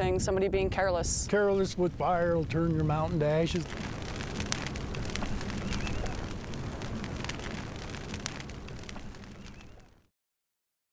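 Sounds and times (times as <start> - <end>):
low fire rumble: 0.0 - 10.1
crackles and pops of burning grass: 0.6 - 10.1.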